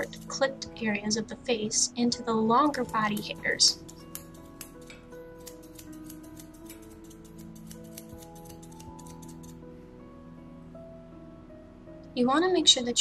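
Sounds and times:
grooming shears snipping: 0.0s - 0.5s, 2.6s - 9.6s
background music: 0.0s - 13.0s.

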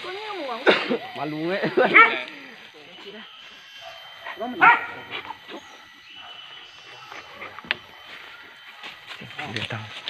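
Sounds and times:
dogs barking and yelping: 1.7s - 9.6s.

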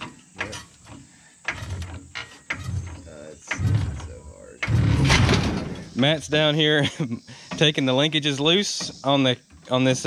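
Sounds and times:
floor jack clicking and creaking: 0.0s - 6.2s, 7.4s - 10.0s.

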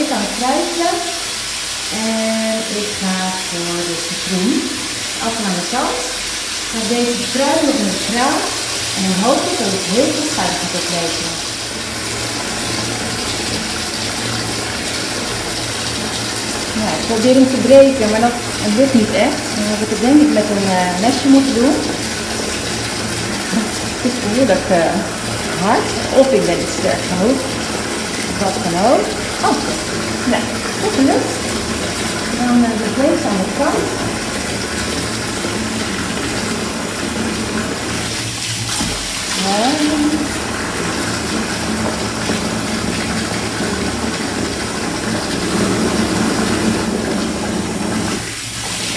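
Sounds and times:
tap water pouring into bathtub: 0.0s - 48.9s.

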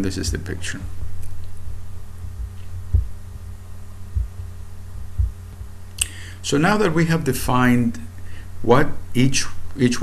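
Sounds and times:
steady low hum: 0.0s - 10.0s
dull low thumps: 0.2s - 5.9s.

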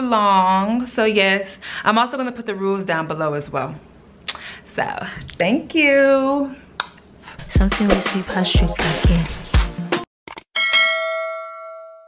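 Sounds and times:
notification bell ding: 10.6s - 12.0s.

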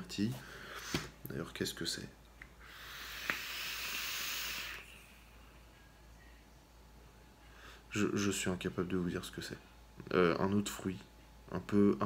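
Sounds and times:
airy hiss of air drawn: 2.6s - 5.2s.

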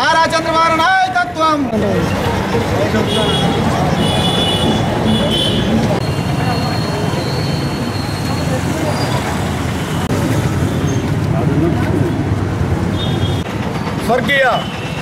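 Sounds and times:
road traffic rumble: 0.0s - 15.0s
people talking: 5.1s - 9.6s.

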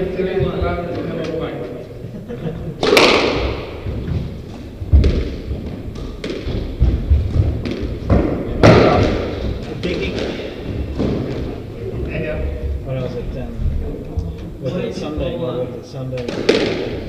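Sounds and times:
squash ball hits echoing: 2.8s - 11.7s, 16.2s - 17.0s.

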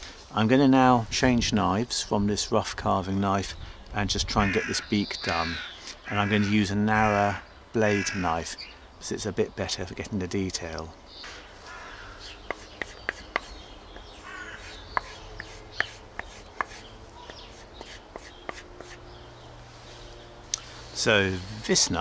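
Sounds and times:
knife blade stropping on leather: 12.2s - 19.0s.

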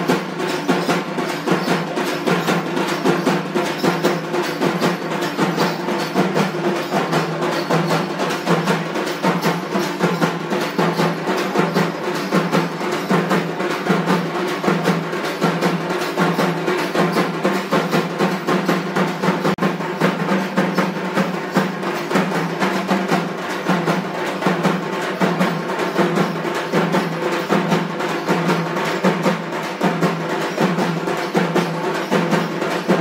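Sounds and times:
hand drums beating rapidly: 0.0s - 33.0s.

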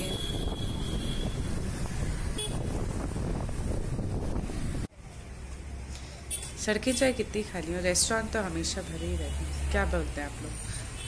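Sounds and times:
wind buffeting microphone: 0.0s - 4.9s
road and traffic rumble: 0.0s - 11.0s.

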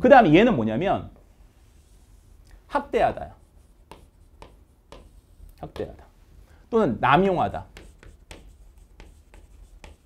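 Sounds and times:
chalk scratching on chalkboard: 1.5s - 2.4s, 3.1s - 6.0s, 7.5s - 10.0s.

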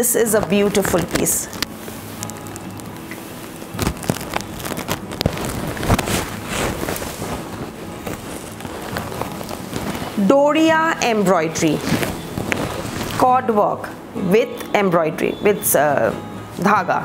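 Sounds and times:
silk fabric rustling: 0.0s - 13.9s.

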